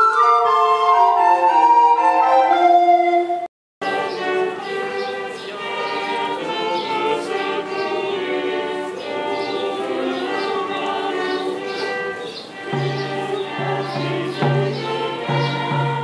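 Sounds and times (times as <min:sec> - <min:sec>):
mixed choir singing: 0:03.8 - 0:16.0.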